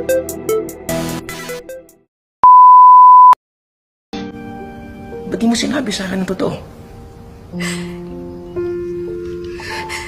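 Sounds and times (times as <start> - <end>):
steady test-tone beep: 2.4 - 3.4.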